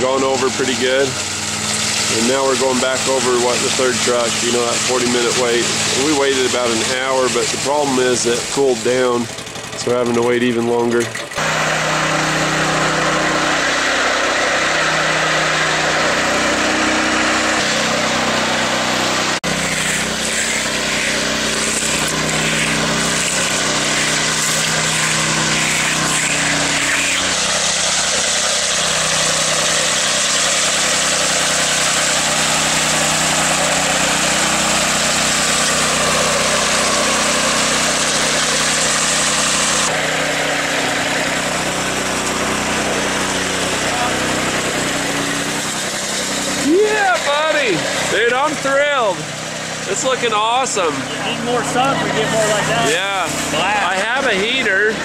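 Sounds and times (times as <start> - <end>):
small gasoline engine running: 0.0 - 55.0.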